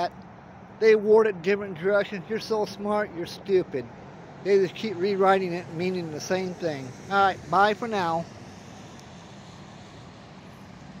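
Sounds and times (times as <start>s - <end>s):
vehicle engine and traffic hum: 0.0s - 11.0s.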